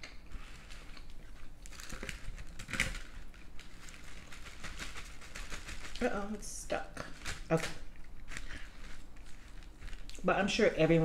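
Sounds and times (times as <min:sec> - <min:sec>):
fork scraping on crinkling paper: 0:08.2 - 0:10.1.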